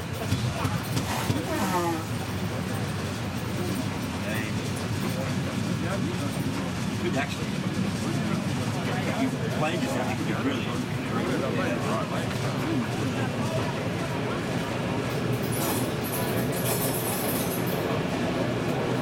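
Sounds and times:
people talking: 0.0s - 19.0s
train rumbling inside carriage: 0.0s - 19.0s.

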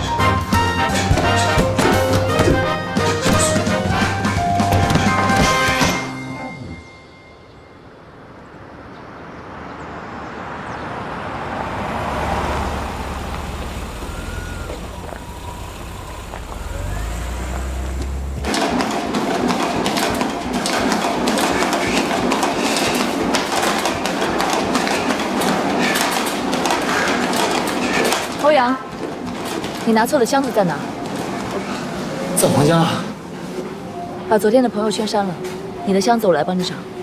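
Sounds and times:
treadmill running: 13.4s - 32.1s.

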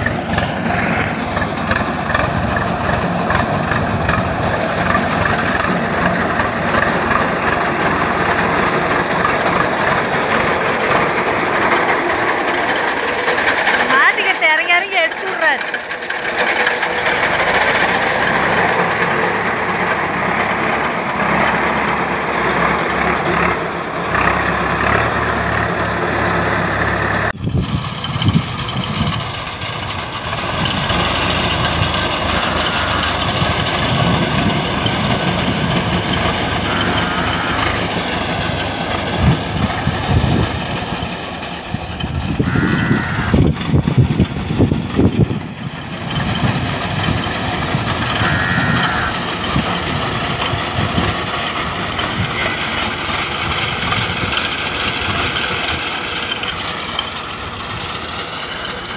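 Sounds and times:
tractor engine running: 0.0s - 58.9s
people talking: 13.8s - 15.7s.

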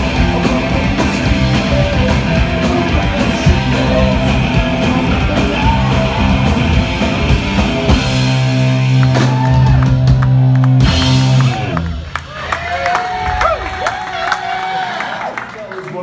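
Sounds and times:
live punk rock band: 0.0s - 12.2s
audience cheering and shouting: 3.0s - 7.6s, 8.2s - 16.0s.

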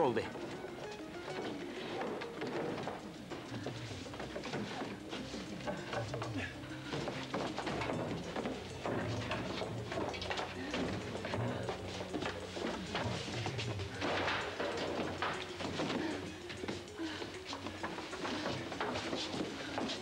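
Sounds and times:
background music: 0.0s - 20.0s.

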